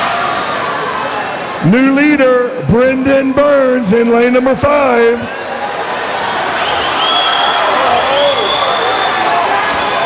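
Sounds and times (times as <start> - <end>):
crowd cheering and yelling: 0.0 - 10.0.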